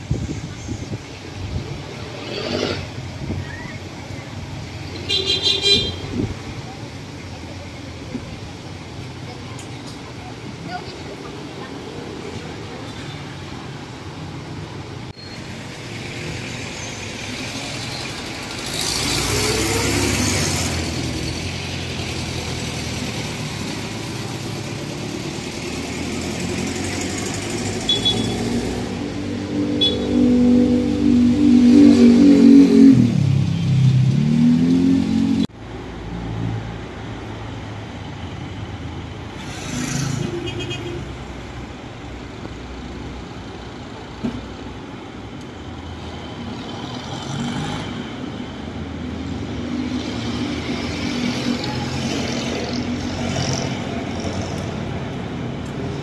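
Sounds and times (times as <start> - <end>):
traffic hum: 0.0 - 56.0.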